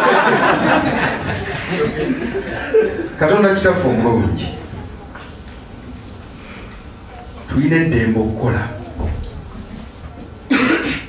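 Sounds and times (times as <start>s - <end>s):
man coughing into microphone: 10.5s - 11.0s.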